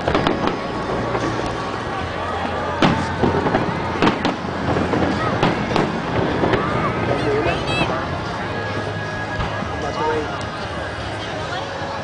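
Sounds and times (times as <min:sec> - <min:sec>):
fireworks bursting: 0:00.0 - 0:09.8
spectators' voices: 0:00.0 - 0:12.0.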